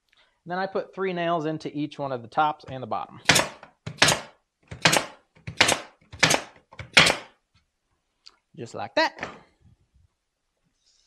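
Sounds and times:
pneumatic nailer firing: 3.2 - 7.3.

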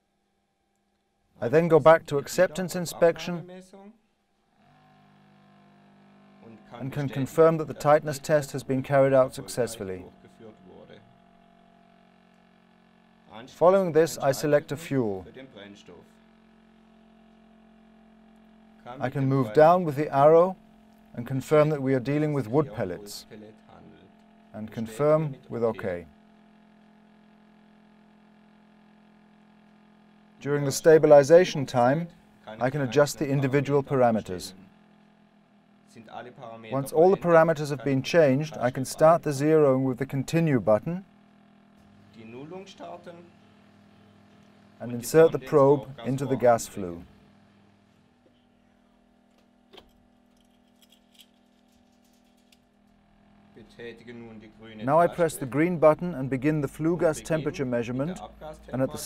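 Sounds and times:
faint steady hum: 0.0 - 59.0
faint steady low hum: 41.8 - 59.0.

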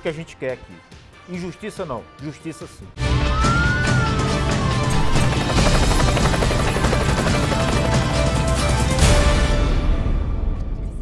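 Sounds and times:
theme music: 0.0 - 11.0
helicopter rotor chopping: 4.6 - 9.0.

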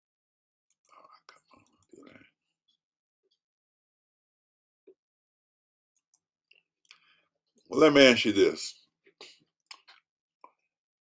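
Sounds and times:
person speaking quietly: 7.8 - 8.7.

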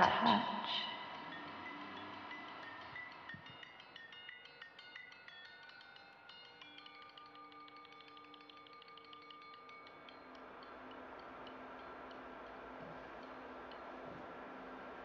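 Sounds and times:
faint tinkling chimes: 0.0 - 15.0.

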